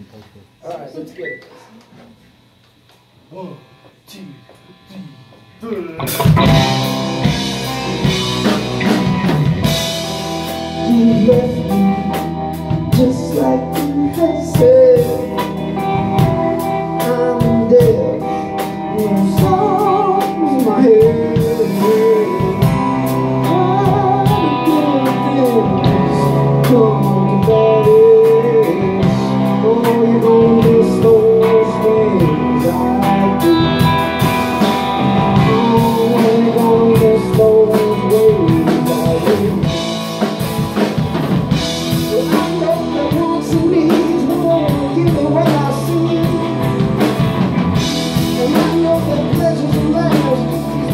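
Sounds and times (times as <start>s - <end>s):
electric guitars: 0.7s - 50.9s
drum kit: 3.0s - 50.9s
electric bass: 4.7s - 50.9s
man singing lead vocal: 10.4s - 40.4s, 41.9s - 50.9s.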